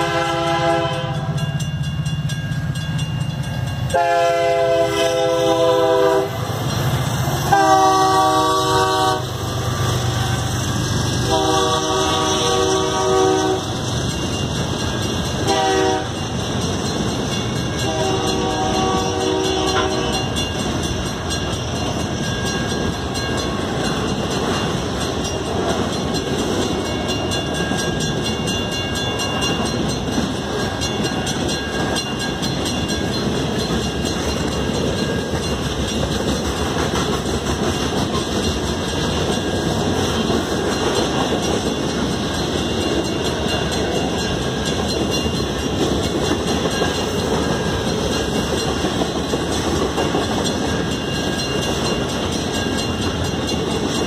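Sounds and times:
train horn blasts: 0.0 - 1.4, 3.9 - 6.4, 7.4 - 9.4, 11.2 - 13.8, 15.4 - 16.2, 17.8 - 20.3
train wheels rattling on rails: 0.0 - 54.0.

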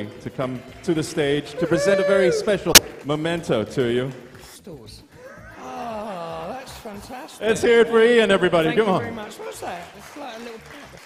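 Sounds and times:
drawn-out vocal call: 1.6 - 2.8.

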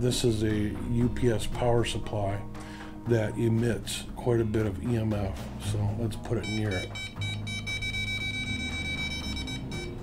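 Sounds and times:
meter beeper high-pitched tone: 6.4 - 10.0.

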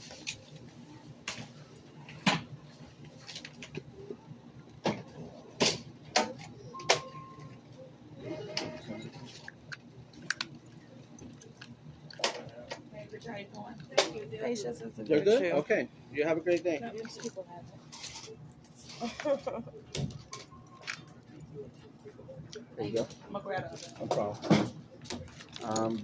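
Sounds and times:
items and bags clicking and knocking: 23.7 - 26.0.

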